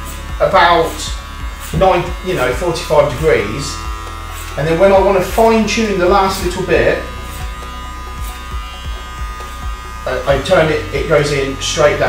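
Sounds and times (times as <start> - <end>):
hair clippers buzzing: 0.0 - 12.0.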